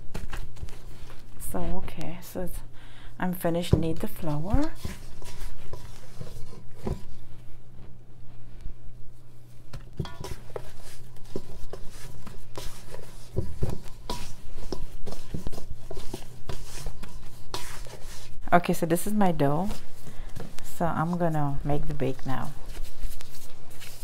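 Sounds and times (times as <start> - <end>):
hands working bread dough: 0.0 - 24.0.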